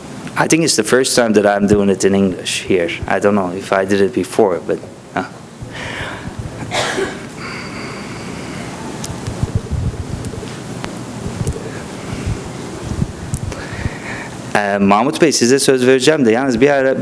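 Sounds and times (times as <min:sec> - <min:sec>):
low murmuring: 0:05.2 - 0:14.5.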